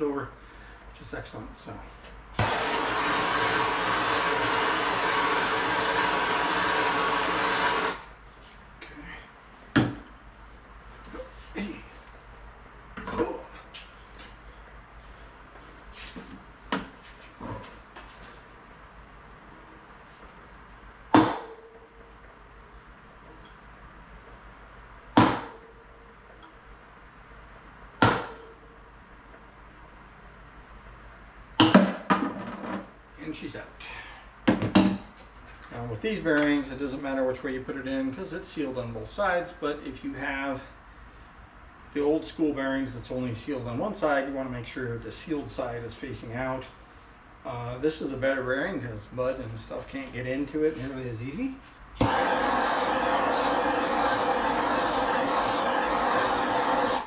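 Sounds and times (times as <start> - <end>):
pressurised can hissing: 52.0 - 57.0.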